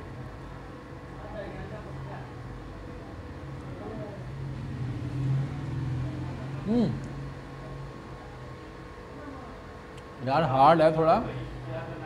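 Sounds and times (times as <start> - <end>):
low steady motor hum: 0.0 - 12.0.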